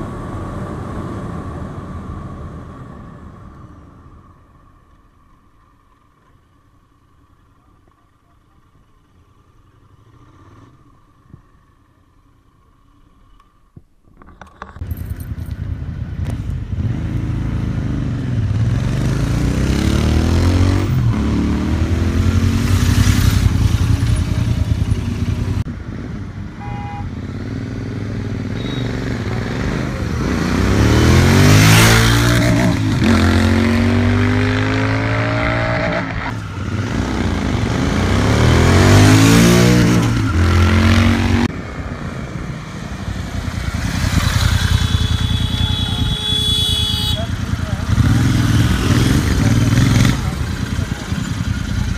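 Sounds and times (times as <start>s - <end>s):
motorcycles accelerating: 15.1s - 51.9s.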